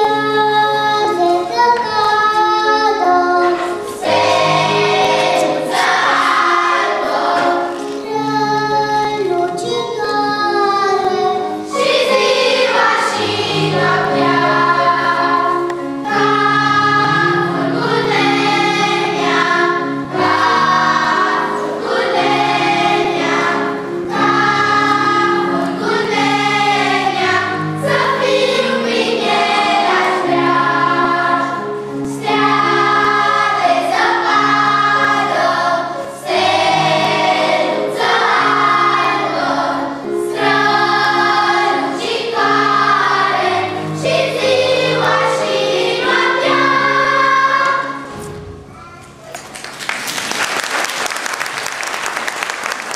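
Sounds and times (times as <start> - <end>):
children's choir singing: 0.0 - 48.6
instrumental accompaniment: 0.0 - 49.8.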